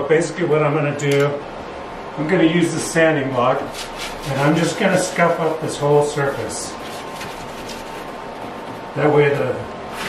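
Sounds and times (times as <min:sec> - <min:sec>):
sanding block scraping resin: 0:03.7 - 0:10.0.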